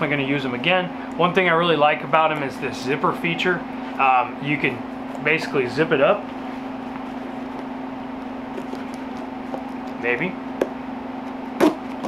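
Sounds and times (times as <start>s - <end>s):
steady low hum: 0.0s - 12.0s
zipper clicks: 11.6s - 12.0s.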